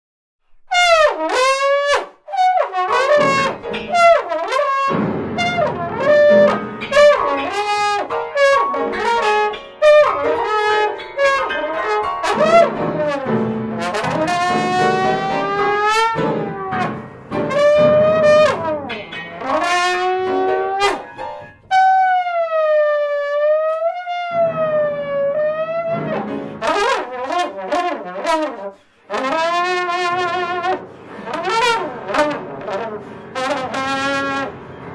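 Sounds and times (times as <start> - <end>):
piano: 0.4 - 34.9
trombone with sliding pitch bends: 0.7 - 34.9.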